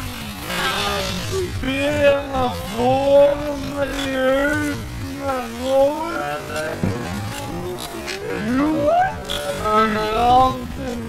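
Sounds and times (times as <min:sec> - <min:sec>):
slowed voice low moan: 0:00.0 - 0:11.0.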